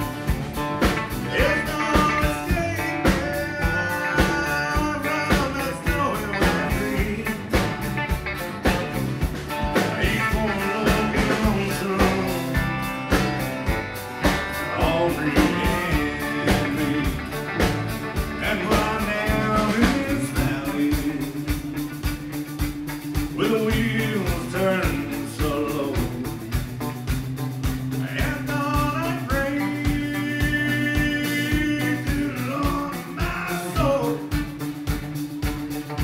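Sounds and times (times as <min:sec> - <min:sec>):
acoustic and electric guitars: 0:00.0 - 0:36.0
bass guitar: 0:00.0 - 0:36.0
drum beat: 0:00.0 - 0:36.0
person singing: 0:01.2 - 0:07.7, 0:09.8 - 0:13.3, 0:14.6 - 0:21.6, 0:23.4 - 0:26.5, 0:28.0 - 0:34.4.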